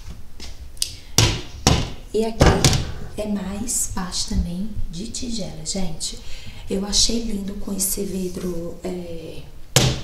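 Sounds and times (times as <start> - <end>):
sharp knocks on cabinet door: 9.8 - 10.0.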